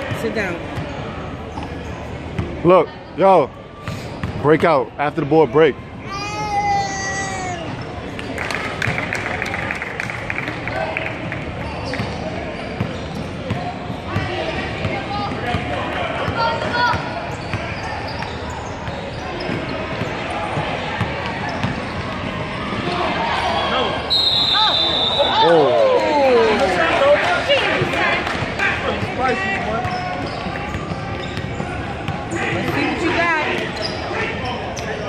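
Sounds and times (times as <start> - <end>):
voices echoing in hall: 4.6 - 35.0
referee's whistle: 23.5 - 25.7.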